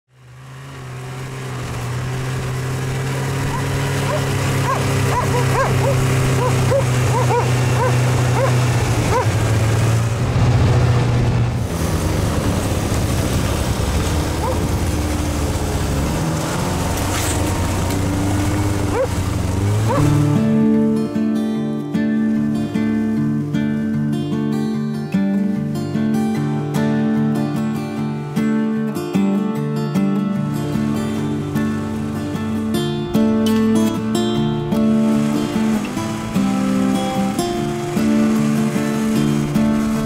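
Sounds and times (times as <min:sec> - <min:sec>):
snowmobile engine running: 0:00.1 - 0:20.9, 0:30.6 - 0:40.0
dog barking: 0:03.5 - 0:09.3, 0:14.4 - 0:14.6, 0:18.9 - 0:19.1, 0:19.9 - 0:20.1.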